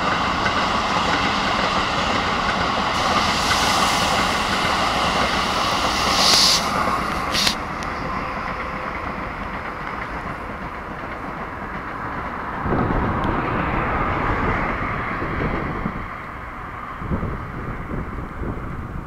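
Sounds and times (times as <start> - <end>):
train wheels clattering on rails: 0.0 - 16.4
brief high hiss: 3.0 - 7.6.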